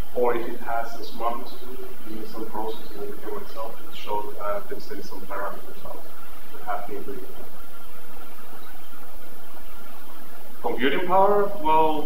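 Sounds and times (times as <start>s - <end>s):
faint hum: 0.0s - 12.0s
steady hiss: 0.0s - 12.0s.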